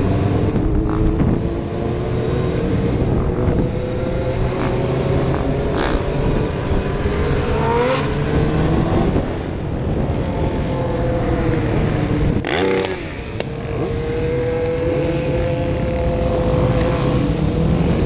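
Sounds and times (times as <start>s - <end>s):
wind rush: 0.0s - 18.0s.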